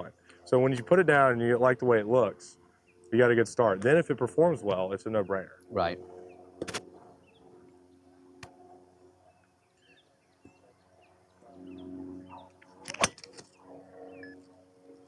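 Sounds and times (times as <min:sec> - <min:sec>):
low hum: 0:00.0 - 0:15.0
bird chirps: 0:09.2 - 0:12.6, 0:13.5 - 0:14.4.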